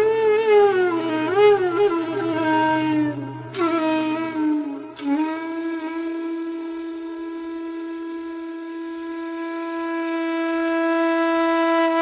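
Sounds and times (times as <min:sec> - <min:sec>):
flute long steady note: 0:00.0 - 0:12.0.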